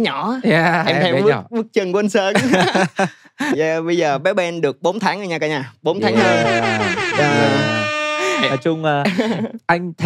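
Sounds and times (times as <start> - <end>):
drawn-out celebratory horn: 6.0 - 8.7.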